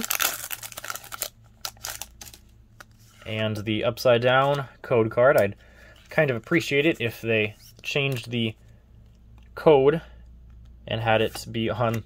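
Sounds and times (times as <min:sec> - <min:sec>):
foil wrapper crinkling: 0:00.0 - 0:02.4.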